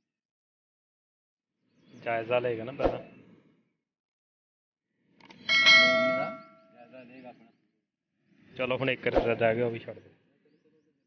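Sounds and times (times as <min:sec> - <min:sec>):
bell-like chime ringing: 0:05.4 - 0:06.8.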